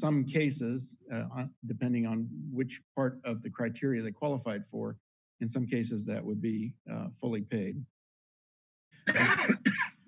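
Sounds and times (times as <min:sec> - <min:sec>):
man coughing: 0:09.1 - 0:10.0.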